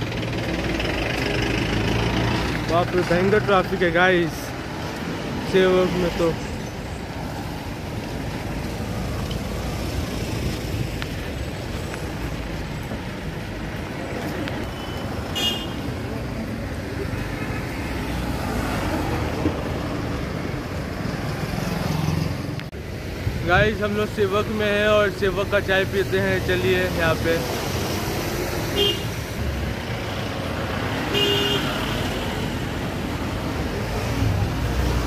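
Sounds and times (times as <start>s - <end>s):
busy road traffic: 0.0s - 35.0s
vehicle horn toot: 14.8s - 15.8s, 28.8s - 29.1s, 31.1s - 31.7s.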